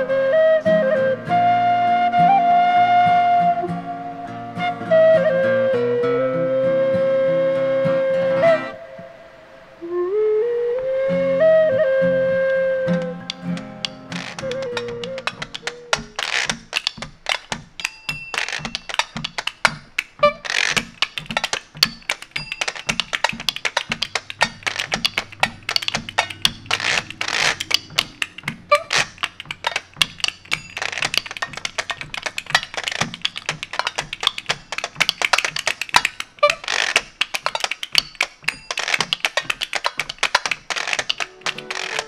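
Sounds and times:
hand-held percussion clacking: 12.9s - 42.0s
washboard scraped and tapped: 13.2s - 42.0s.

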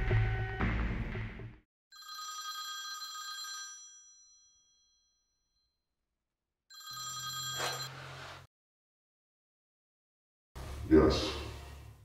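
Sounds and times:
landline telephone ringing: 1.9s - 5.0s, 6.7s - 8.0s.

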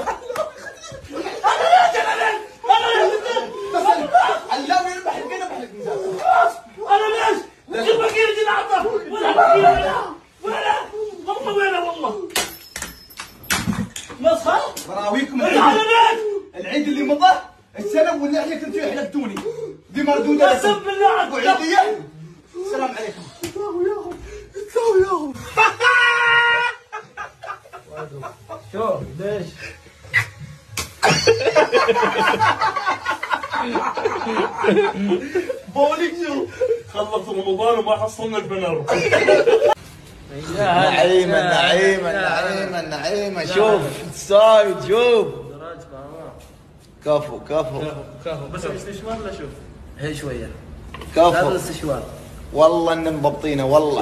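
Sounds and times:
men laughing: 0.0s - 6.6s, 23.8s - 30.3s, 31.0s - 37.3s, 38.8s - 39.9s
men shouting together: 1.1s - 12.3s, 15.4s - 16.6s, 23.6s - 27.0s.

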